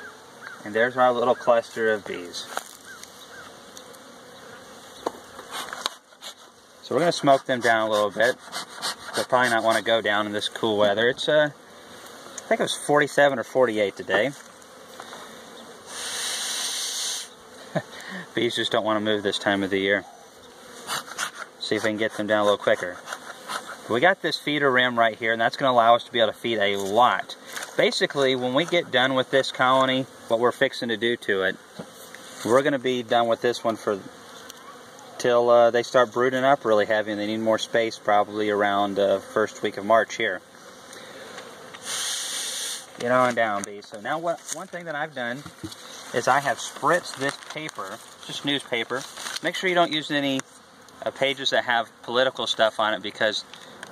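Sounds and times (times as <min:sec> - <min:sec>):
bellows smoker hiss: 0:00.0 - 0:34.5, 0:35.2 - 0:53.9
bellows smoker air hiss: 0:05.4 - 0:10.1, 0:15.1 - 0:18.5, 0:40.9 - 0:43.0.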